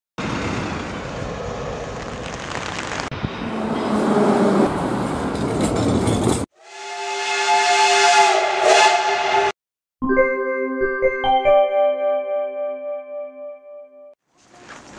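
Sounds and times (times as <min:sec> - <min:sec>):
bus: 0:00.2 - 0:06.5, 0:14.3 - 0:14.9
street traffic: 0:00.2 - 0:06.5, 0:14.2 - 0:14.9
tram running: 0:00.2 - 0:07.4
long chord horn: 0:06.6 - 0:09.6.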